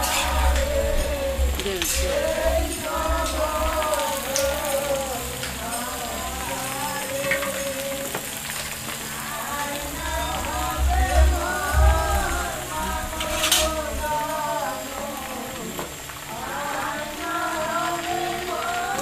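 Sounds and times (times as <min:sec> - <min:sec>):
vegetables sizzling in oil: 0:00.0 - 0:19.0.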